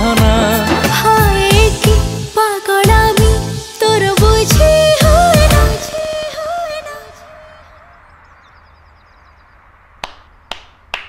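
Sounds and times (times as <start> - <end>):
sharp hand claps: 10.0 - 11.0.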